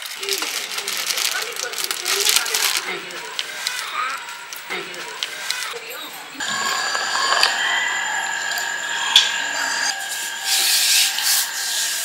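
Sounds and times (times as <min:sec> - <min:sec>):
rough rubbing scraping: 0:06.4 - 0:12.0
thin high background tone: 0:06.4 - 0:12.0.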